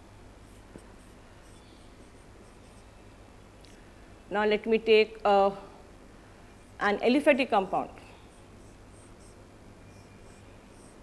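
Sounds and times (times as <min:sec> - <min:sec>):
low room hum: 0:00.0 - 0:11.0
marker squeaking on a whiteboard: 0:00.4 - 0:02.9, 0:07.6 - 0:11.0.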